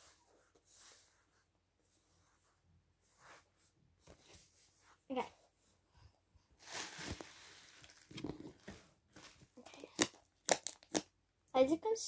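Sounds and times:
slime popping: 9.7s - 11.1s
slime squishing and crackling: 9.7s - 11.1s.

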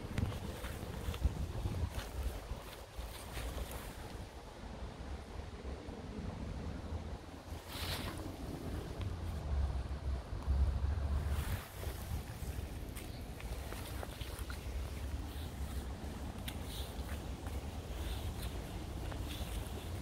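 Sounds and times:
wind buffeting microphone: 0.0s - 20.0s
brief rustle: 7.6s - 8.3s.

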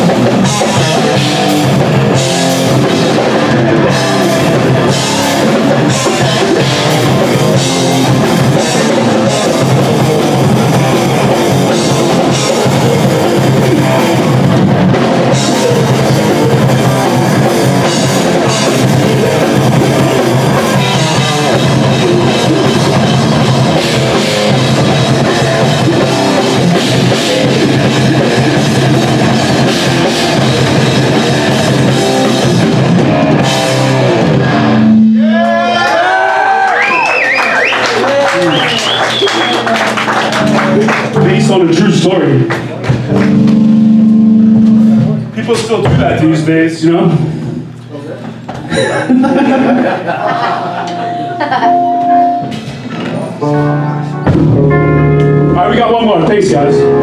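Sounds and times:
thrash metal band playing: 0.0s - 36.6s, 38.0s - 47.7s, 49.3s - 57.0s
drum kit: 0.0s - 46.5s, 47.1s - 57.0s
bass guitar: 0.0s - 48.9s, 50.0s - 57.0s
distorted electric guitars: 0.0s - 57.0s
guitar squeals sliding in pitch: 34.5s - 35.8s.

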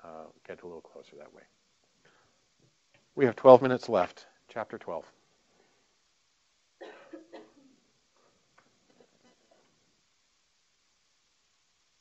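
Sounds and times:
person coughing: 6.8s - 7.7s.

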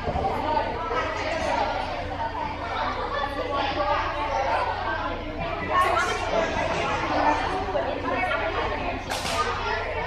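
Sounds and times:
many voices chattering: 0.0s - 10.0s.

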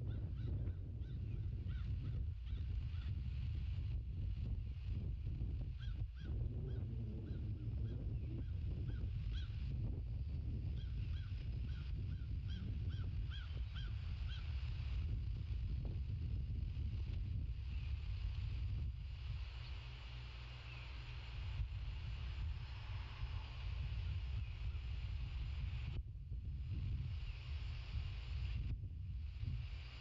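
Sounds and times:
wind rumble on microphone: 0.0s - 30.0s.

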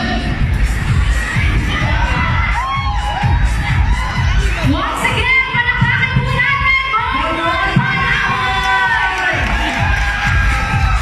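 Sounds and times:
low bass beat: 0.0s - 11.0s
crowd cheering and screaming: 1.1s - 5.6s, 6.5s - 11.0s.

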